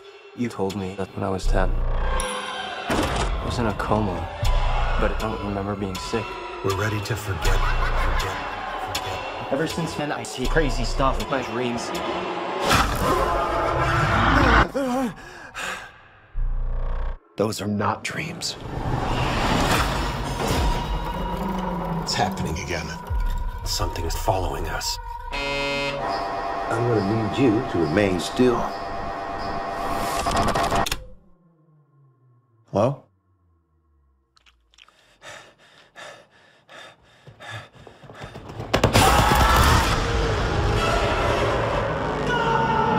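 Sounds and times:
wavering gasp-like vocal sound: 0:14.6 - 0:16.3.

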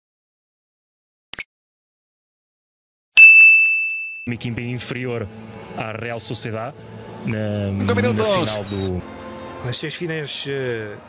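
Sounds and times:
high bell-like ding: 0:03.2 - 0:04.4.

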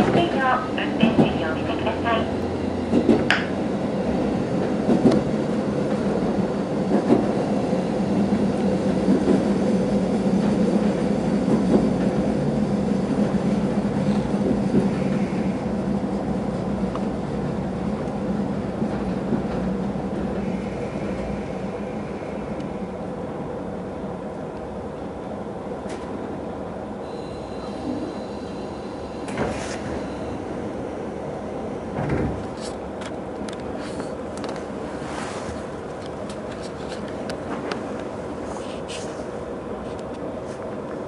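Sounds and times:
train wheels rolling on rails: 0:00.0 - 0:23.3, 0:25.7 - 0:41.0
diesel railcar engine running: 0:00.0 - 0:41.0
rail-joint clicks: 0:02.9 - 0:03.6, 0:04.6 - 0:05.3.

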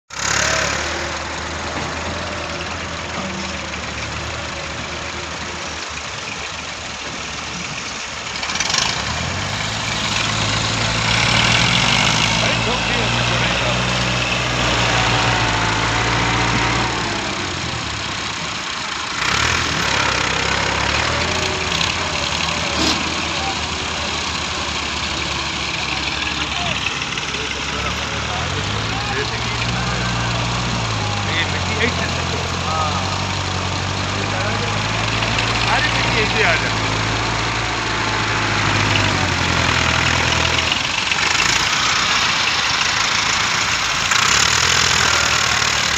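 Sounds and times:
diesel engines revving: 0:00.0 - 0:45.9.

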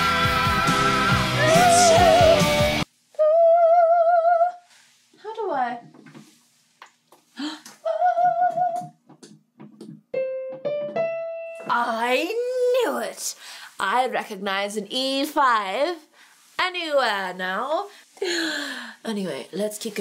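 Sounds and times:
heavy metal song with male vocal: 0:00.0 - 0:02.8.

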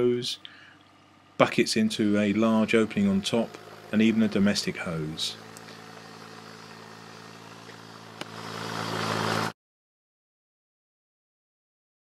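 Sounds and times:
engine running with even hum: 0:00.0 - 0:09.6.

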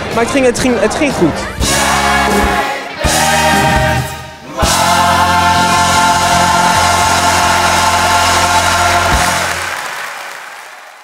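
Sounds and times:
ensemble singing over a band: 0:01.6 - 0:09.7.

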